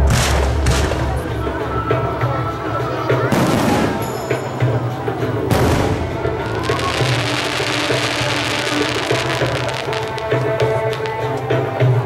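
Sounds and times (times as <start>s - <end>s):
fireworks crackling: 0.0s - 1.7s, 3.0s - 12.0s
music: 0.0s - 12.0s.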